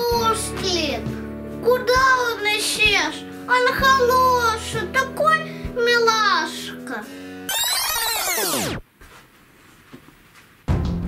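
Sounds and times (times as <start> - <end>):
background music: 0.0 - 8.8, 10.7 - 11.0
child singing: 1.7 - 7.1
falling-pitch sweep sound effect: 7.5 - 8.8.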